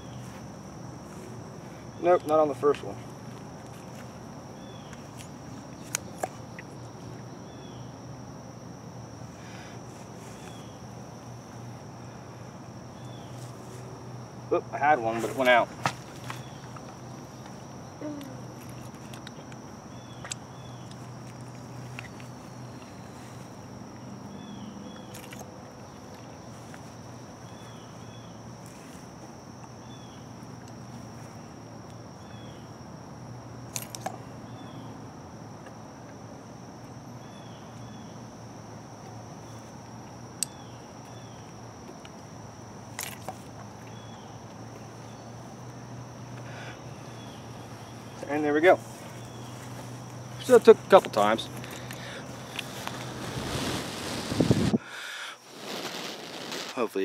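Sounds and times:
faint insect chirps: 0.0s - 57.0s
high insect drone: 0.0s - 57.0s.

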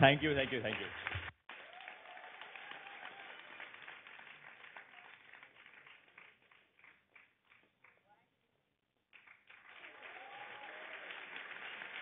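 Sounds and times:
faint applause: 0.1s - 8.0s, 9.2s - 12.0s.

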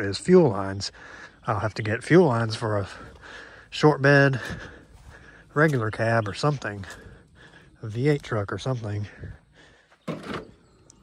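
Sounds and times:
man speaking: 0.0s - 4.8s, 5.5s - 9.4s.

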